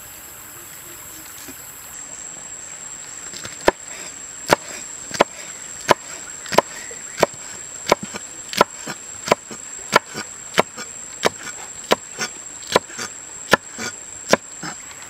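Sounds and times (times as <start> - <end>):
knife chopping on wooden board: 4.5 - 14.8.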